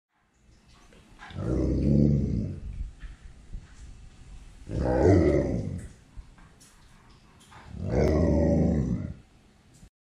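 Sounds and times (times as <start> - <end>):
dog growling: 1.2 - 2.8, 4.7 - 6.0, 7.7 - 9.2.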